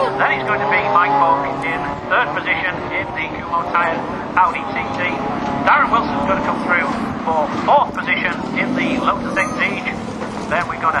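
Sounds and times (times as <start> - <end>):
car engines running: 0.0 - 11.0
man commentating: 0.0 - 11.0.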